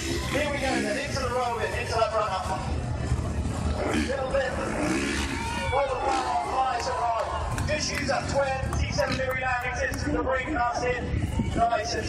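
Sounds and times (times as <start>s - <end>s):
man commentating over loudspeaker: 0.0s - 2.8s, 3.8s - 12.0s
motorbike engine revving: 3.2s - 6.6s.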